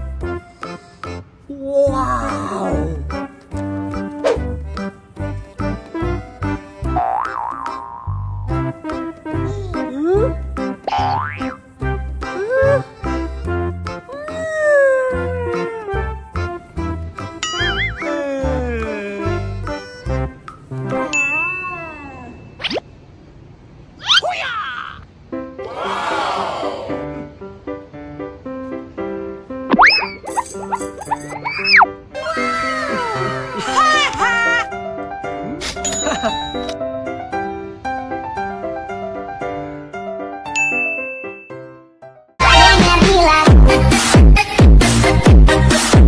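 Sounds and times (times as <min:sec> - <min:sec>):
ringing ding: 0:17.4 - 0:17.9, 0:21.1 - 0:22.6, 0:40.6 - 0:41.7
plinking bell-like melody: 0:17.4 - 0:18.0, 0:21.1 - 0:22.6, 0:35.8 - 0:36.8, 0:40.6 - 0:41.7
bright ding: 0:40.5 - 0:41.6
music with deep bass: 0:42.4 - 0:46.0.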